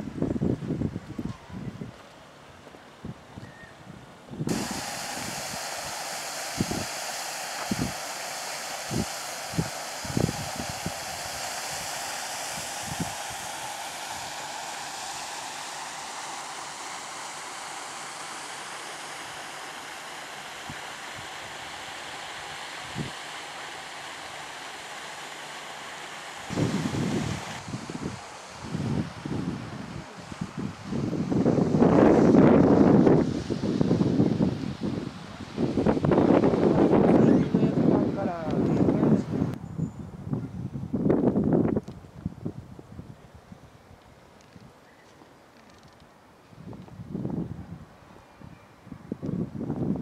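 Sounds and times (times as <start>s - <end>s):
wind buffeting microphone: 3.0s - 17.0s, 26.5s - 43.8s, 46.6s - 50.0s
fountain spray splashing on water: 4.5s - 39.2s.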